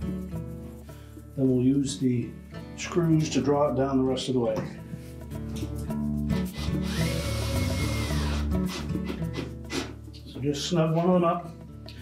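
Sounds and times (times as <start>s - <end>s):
background music: 0.0s - 12.0s
power drill driving a screw: 6.5s - 8.8s.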